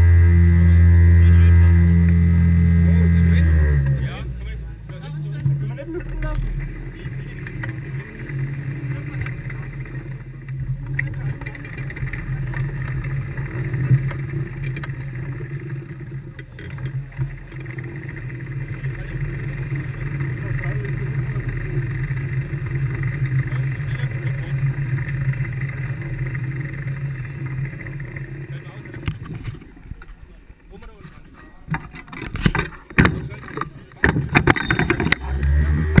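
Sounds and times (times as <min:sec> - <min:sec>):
race car engine at low revs: 0:00.0 - 0:36.0
sharp knocks and rattles: 0:31.7 - 0:36.0.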